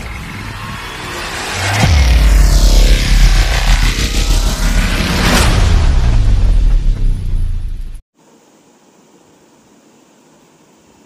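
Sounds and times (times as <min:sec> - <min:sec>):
rumbling whooshing noise: 0:00.0 - 0:08.0
deep boom: 0:00.5 - 0:08.0.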